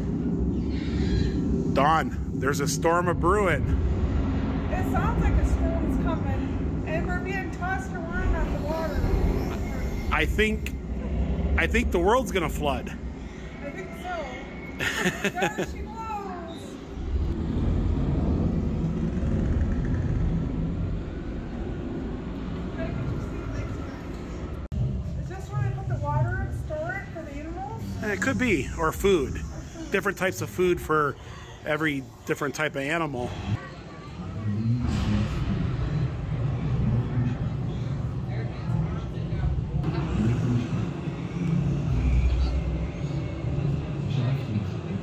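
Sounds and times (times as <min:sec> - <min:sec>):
low rumble: 0:00.0 - 0:31.4, 0:33.3 - 0:45.0.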